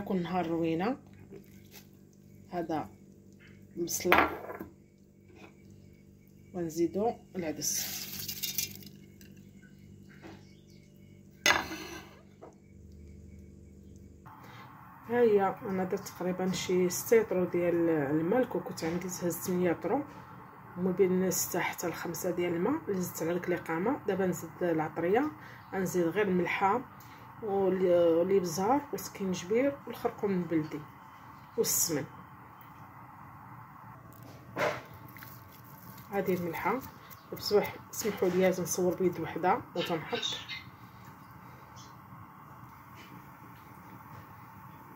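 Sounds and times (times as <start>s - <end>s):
faint background hum: 0.0s - 44.9s
low steady background noise: 0.0s - 44.9s
lentils poured into metal pot: 7.7s - 8.9s.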